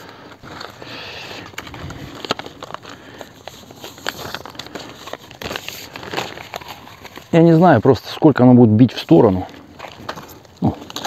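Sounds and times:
plastic hose rustling and crackling: 0.0 - 11.0.

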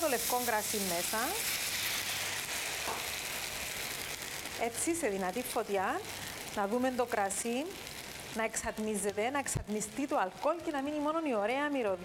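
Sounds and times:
wine sizzling in frying pan: 0.0 - 12.0.

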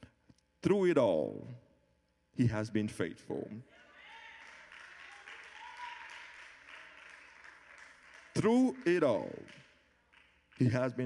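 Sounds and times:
congregation applauding: 3.7 - 11.0.

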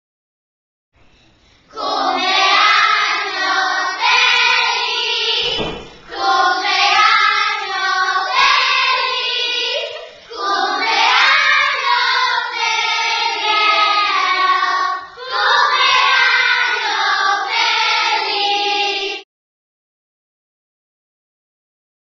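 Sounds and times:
children singing in unison: 1.7 - 19.2.

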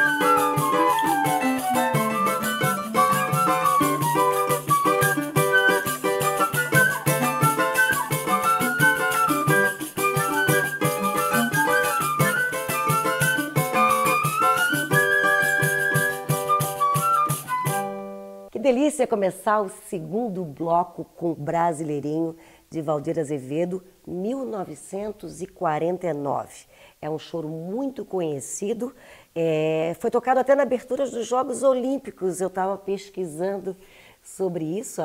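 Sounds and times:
small plucked string instrument: 0.0 - 18.4
clarinet: 0.0 - 18.5
flute melody: 0.0 - 18.5.

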